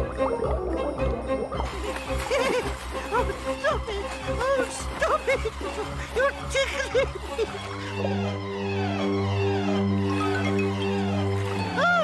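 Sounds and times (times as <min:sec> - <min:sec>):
cartoon music with pulsing beat: 0:00.0 - 0:02.5.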